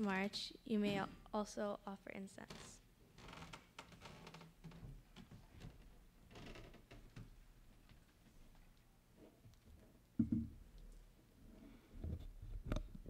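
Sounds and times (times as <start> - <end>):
soft knocks: 10.2 - 10.6.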